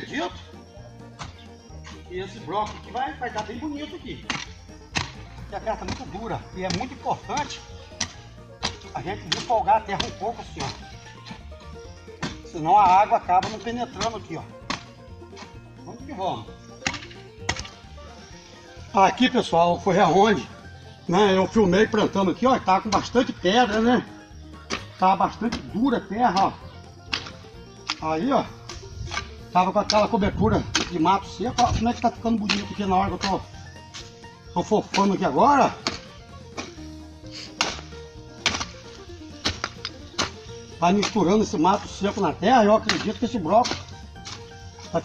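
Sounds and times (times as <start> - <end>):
background music with held notes: 0.0 - 45.0
hoe striking hard soil: 0.0 - 45.0.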